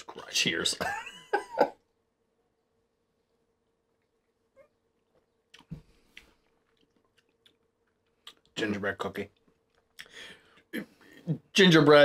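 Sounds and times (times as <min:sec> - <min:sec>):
man laughing: 0:00.7 - 0:01.8.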